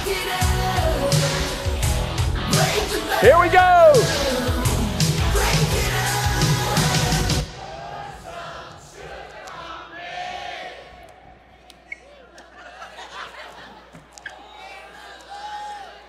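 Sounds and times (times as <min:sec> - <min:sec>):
loud pop-rock music: 0:00.0 - 0:07.5
audience singing: 0:04.0 - 0:16.0.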